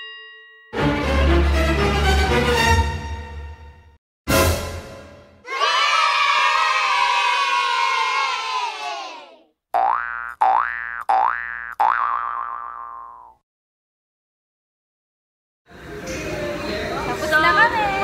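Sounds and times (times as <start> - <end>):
cartoon boings: 9.8 - 13.4.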